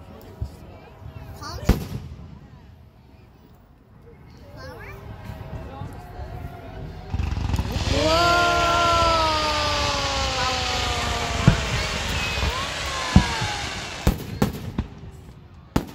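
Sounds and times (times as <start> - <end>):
firework fountain hissing: 6.8 - 15.9
firework shells exploding: 7.1 - 15.9.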